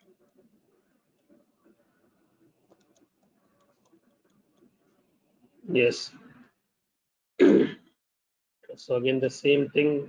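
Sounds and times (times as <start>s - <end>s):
faint clicks: 2.6s - 5.0s.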